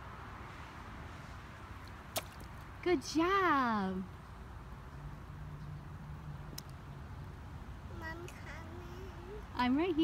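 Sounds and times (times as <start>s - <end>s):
faint continuous hum: 0.0s - 10.0s
street background rumble: 0.0s - 10.0s.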